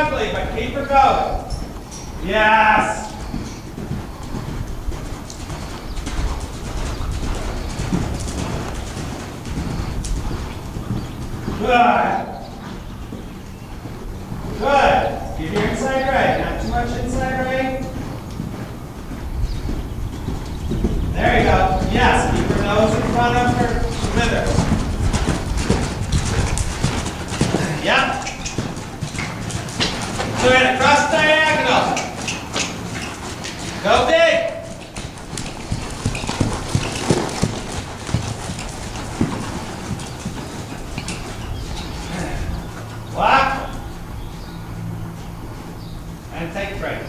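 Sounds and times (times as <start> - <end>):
horse hoofbeats on dirt: 0.0 - 47.0.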